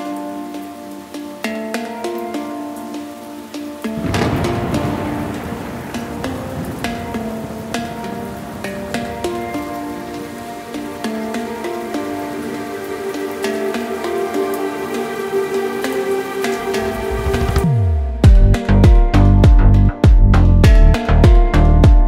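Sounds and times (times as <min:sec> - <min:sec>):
plucked melody music: 0:00.0 - 0:22.0.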